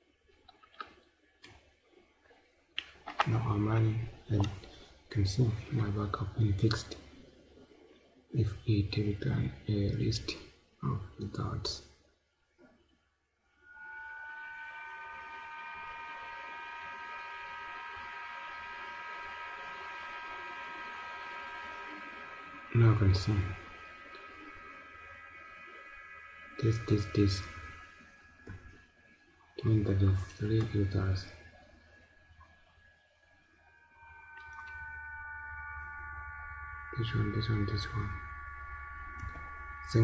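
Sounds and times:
small electric motor whining: 13.6 - 40.0
faint clicks: 38.7 - 40.0.

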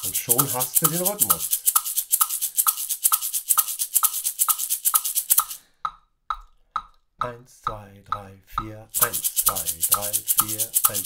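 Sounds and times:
maraca shaking: 0.0 - 5.7, 8.9 - 11.0
metronome clicking: 0.0 - 7.4, 8.1 - 11.0.

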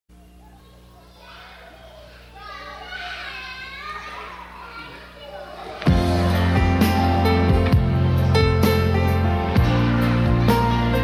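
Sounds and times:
children chattering and calling: 0.1 - 11.0
band music: 5.8 - 11.0.

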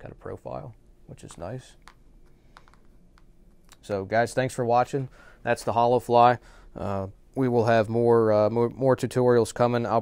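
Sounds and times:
man speaking: 0.0 - 1.9, 3.7 - 10.0.

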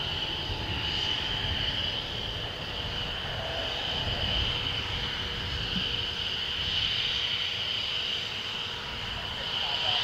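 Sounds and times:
jet engines whining: 0.0 - 10.0.

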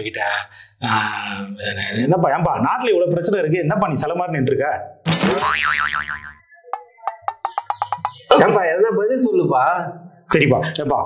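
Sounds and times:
cartoon boing: 5.1 - 6.9.

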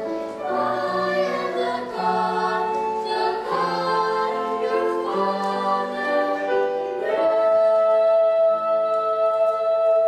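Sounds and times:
choir singing long notes: 0.0 - 10.0.

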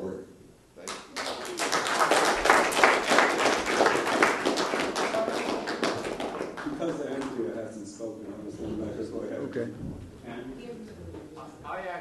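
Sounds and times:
audience applause: 0.9 - 7.4.

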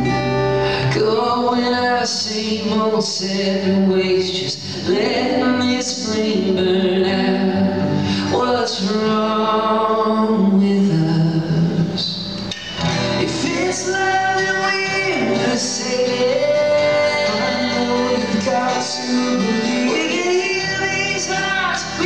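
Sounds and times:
acoustic guitars: 0.0 - 22.0
man singing: 0.6 - 12.3, 12.9 - 22.0.

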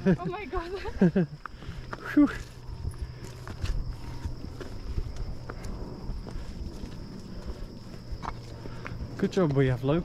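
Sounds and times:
footsteps on dirt path: 0.0 - 10.0
insects droning: 0.0 - 10.0.

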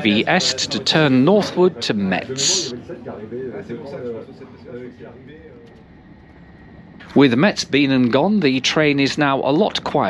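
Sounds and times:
faint voices talking: 0.0 - 10.0
train running noise: 0.0 - 10.0.

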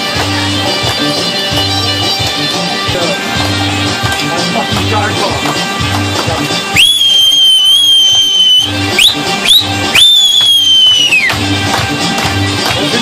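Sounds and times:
folk dance music: 0.0 - 13.0
shrill whistling: 6.7 - 11.4.

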